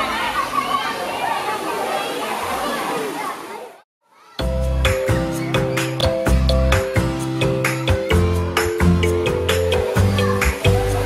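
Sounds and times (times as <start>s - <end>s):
water sloshing in a pool: 0.0s - 3.8s
children's voices: 0.0s - 11.0s.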